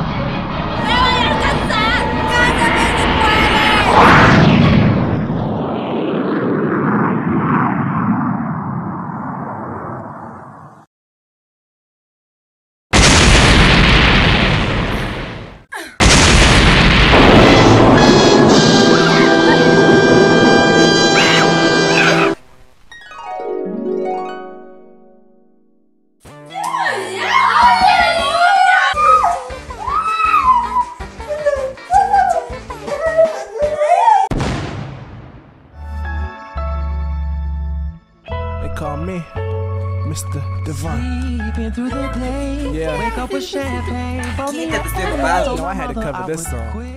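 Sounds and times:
loud boom impact: 0.0s - 9.9s, 13.0s - 22.9s, 34.3s - 35.8s
loud blast: 0.0s - 10.0s, 12.9s - 22.9s, 34.3s - 35.8s
dramatic music with held notes: 0.1s - 4.0s, 17.7s - 22.4s
soft music with bass: 35.8s - 46.9s.

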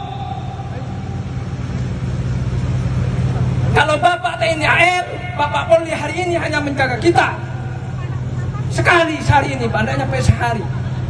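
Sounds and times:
road noise: 0.0s - 11.0s
vehicle engines rumbling: 0.0s - 11.0s.

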